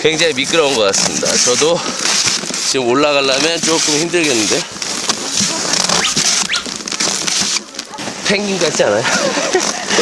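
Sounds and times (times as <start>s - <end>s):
snowshoes crunching on icy snow: 0.0s - 10.0s.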